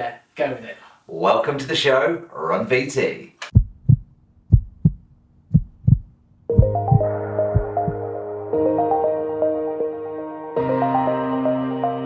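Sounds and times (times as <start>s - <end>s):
heartbeat thumps: 3.5s - 8.0s.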